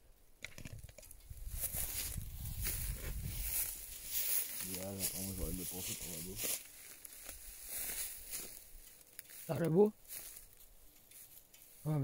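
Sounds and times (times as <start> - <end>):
soft footsteps in dry grass: 1.0 - 12.0.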